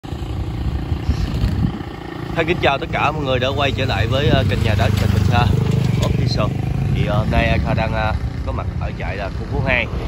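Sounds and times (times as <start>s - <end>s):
motorbike engine rumbling: 0.0s - 10.0s.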